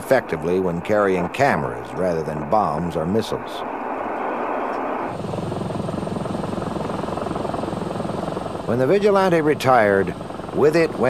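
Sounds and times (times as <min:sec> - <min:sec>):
aircraft rushing noise: 0:00.0 - 0:11.0
rapid chopping pulse: 0:05.0 - 0:11.0.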